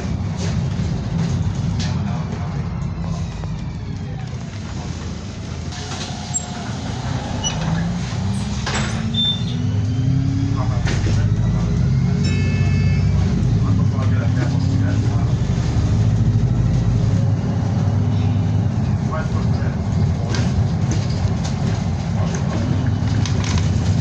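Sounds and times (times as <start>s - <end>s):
bus diesel engine driving: 0.0s - 24.0s.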